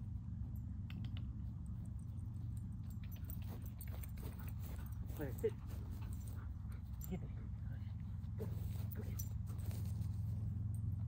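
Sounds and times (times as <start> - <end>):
steady low rumble: 0.0 - 11.0
man's footsteps: 2.9 - 7.0, 7.9 - 10.5
dog running on grass: 3.1 - 6.4.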